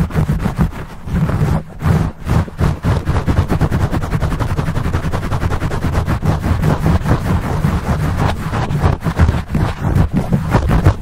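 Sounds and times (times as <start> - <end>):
fingertips scratching microphone cover: 0.0 - 11.0.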